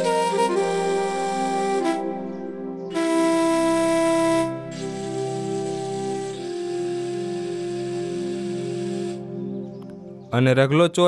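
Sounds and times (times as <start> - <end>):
flute-like held note: 0.0 - 9.3
low drone: 0.0 - 10.1.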